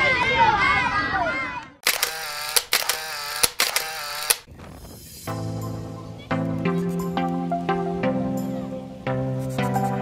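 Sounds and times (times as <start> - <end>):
children's voices: 0.0 - 1.8
camera shutter clicks: 1.8 - 4.5
buzzing whir: 1.9 - 4.5.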